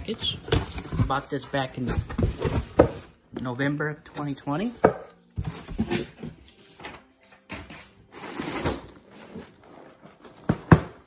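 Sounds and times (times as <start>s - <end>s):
packing rustling and scraping: 7.9s - 11.0s.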